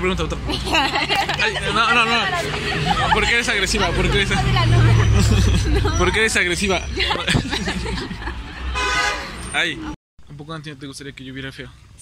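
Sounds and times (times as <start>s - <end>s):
people talking and laughing: 0.2s - 8.8s.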